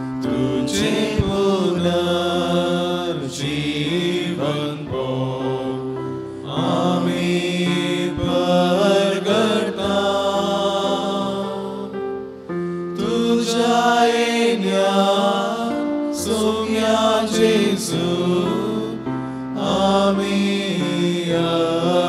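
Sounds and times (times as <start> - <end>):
person singing a hymn: 0.0 - 22.0.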